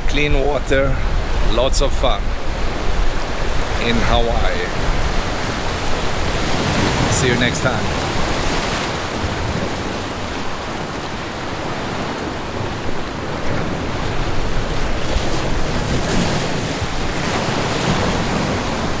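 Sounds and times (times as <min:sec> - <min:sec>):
ocean surf breaking: 0:00.0 - 0:19.0
wind buffeting microphone: 0:00.0 - 0:19.0.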